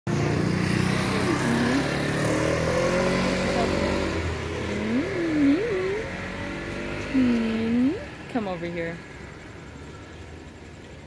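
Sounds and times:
engine running: 0.1 - 11.0
woman's wordless voice sliding: 4.6 - 6.2.

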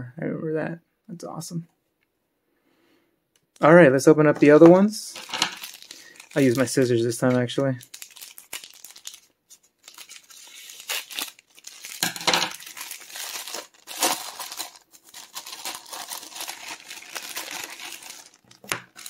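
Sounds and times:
plastic crinkling and tearing: 4.4 - 19.0.

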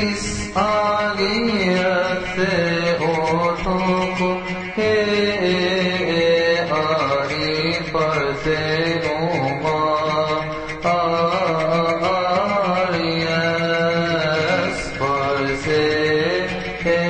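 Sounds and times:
person chanting a hymn: 0.0 - 17.0.

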